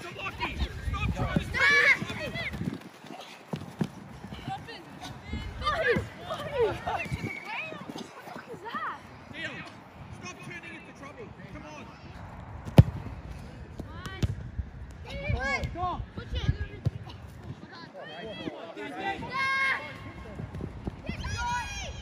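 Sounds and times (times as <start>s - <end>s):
football kick thud: 12.6s - 13.1s.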